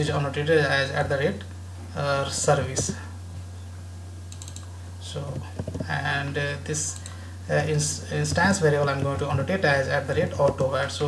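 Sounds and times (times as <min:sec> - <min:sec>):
steady low hum: 0:00.0 - 0:11.0
computer keyboard keystrokes: 0:04.3 - 0:04.7.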